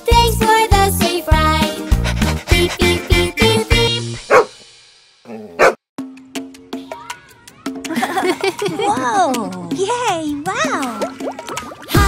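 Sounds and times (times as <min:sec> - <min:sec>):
song music: 0:00.0 - 0:05.2
cartoon dog barking: 0:05.4 - 0:05.8.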